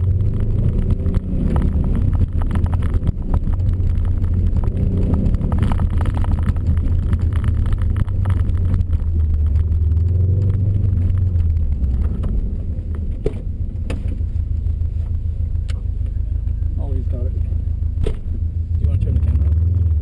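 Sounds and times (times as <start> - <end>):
car engine droning in cabin: 0.0 - 20.0.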